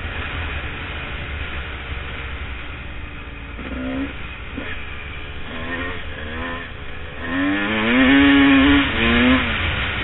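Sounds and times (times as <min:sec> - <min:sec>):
dirt bike engine revving: 0:03.6 - 0:10.0.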